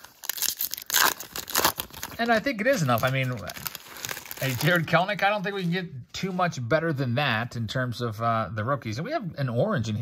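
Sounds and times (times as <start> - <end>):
foil wrapper tearing and crinkling: 0.0 - 5.4.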